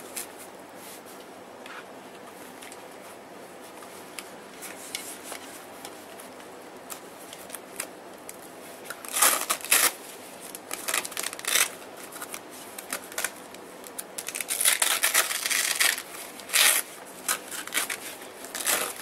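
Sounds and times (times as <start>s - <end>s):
hook-and-loop fastener ripping: 8.9s - 19.0s.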